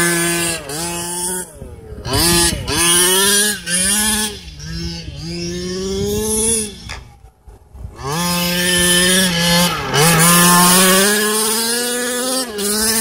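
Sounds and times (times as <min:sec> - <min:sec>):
small two-stroke engine revving: 0:00.0 - 0:07.1, 0:07.8 - 0:13.0.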